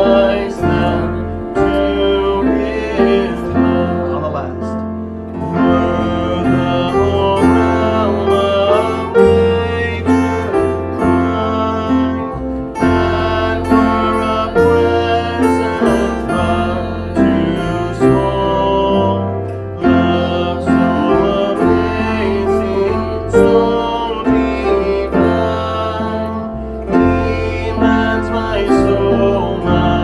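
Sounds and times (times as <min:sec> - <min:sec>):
acoustic guitar music: 0:00.0 - 0:30.0
bass line: 0:00.0 - 0:30.0.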